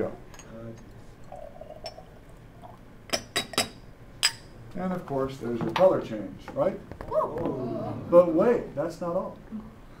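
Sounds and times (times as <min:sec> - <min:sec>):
liquid pouring into glass flask: 0:01.2 - 0:02.8.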